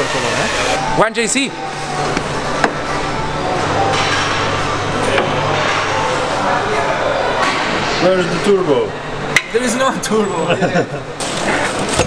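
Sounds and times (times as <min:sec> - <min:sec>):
indistinct background voices: 0:00.0 - 0:10.3
steady low hum: 0:00.0 - 0:11.3.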